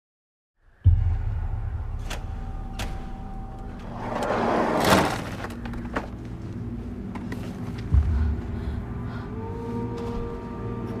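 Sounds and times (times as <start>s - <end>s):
low rumble: 0.6s - 7.0s, 7.7s - 11.0s
van sliding door rolling open: 4.0s - 5.5s.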